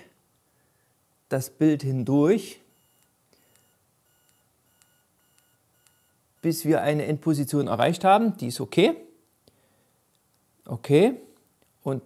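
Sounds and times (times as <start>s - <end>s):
faint stepper motor whine: 2.5s - 7.0s.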